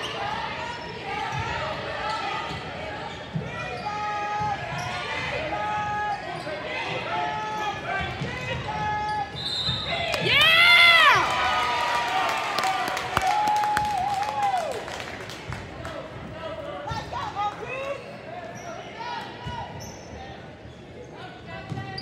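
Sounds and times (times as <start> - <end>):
sneakers squeaking: 0.0 - 7.1, 7.9 - 10.8, 17.8 - 22.0
crowd chatter: 0.0 - 22.0.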